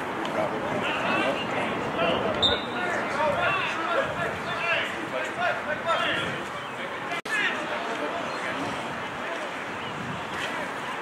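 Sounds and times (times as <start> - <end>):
people calling out and talking: 0.0 - 11.0.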